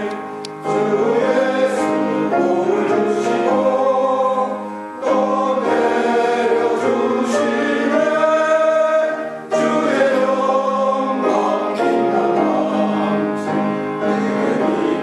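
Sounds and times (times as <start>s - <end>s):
men's choir singing a hymn: 0.0s - 15.0s.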